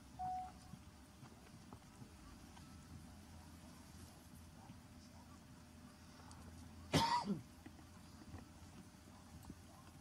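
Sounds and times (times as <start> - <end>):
person coughing: 6.9 - 7.5.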